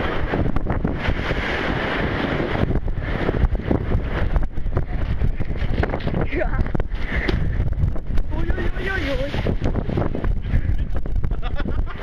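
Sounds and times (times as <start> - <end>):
surf splashing against seawall: 0.0 - 12.0
wind buffeting microphone: 0.0 - 12.0.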